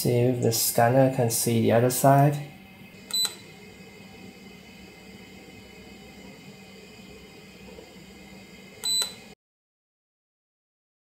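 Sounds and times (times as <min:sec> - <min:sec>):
faint steady hum: 0:00.0 - 0:09.4.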